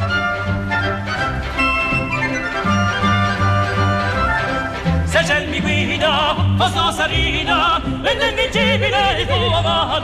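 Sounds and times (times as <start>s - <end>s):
orchestral accompaniment: 0.0s - 10.0s
opera singing with vibrato: 5.1s - 10.0s.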